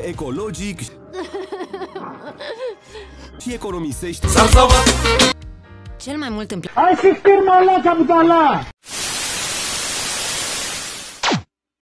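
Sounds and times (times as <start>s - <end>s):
television static hiss: 8.9s - 11.1s.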